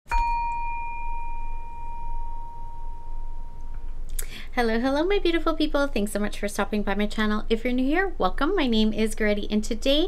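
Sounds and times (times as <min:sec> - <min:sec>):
metal chime ringing: 0:00.1 - 0:04.1.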